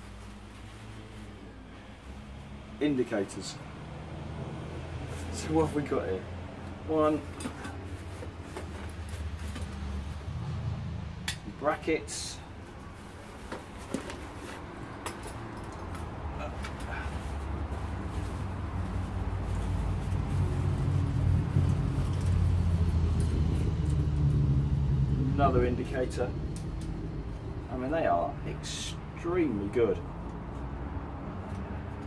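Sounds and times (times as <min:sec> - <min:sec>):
motor vehicle engine drone: 0:00.2 - 0:13.6, 0:14.6 - 0:32.0.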